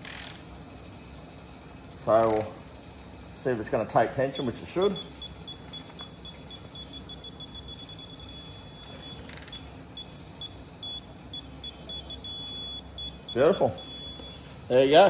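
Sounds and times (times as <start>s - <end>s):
torque wrench beeping: 4.2s - 14.8s.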